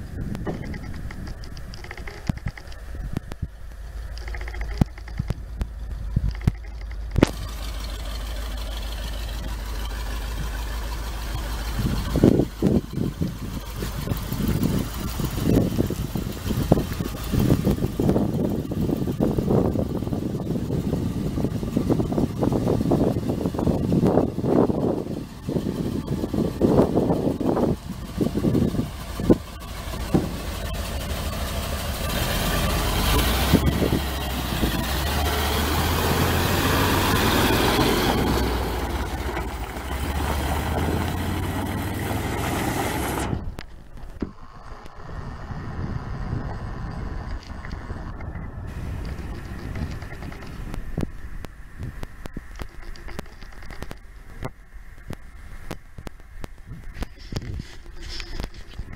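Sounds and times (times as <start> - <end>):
truck engine rumbling: 0.0 - 58.9.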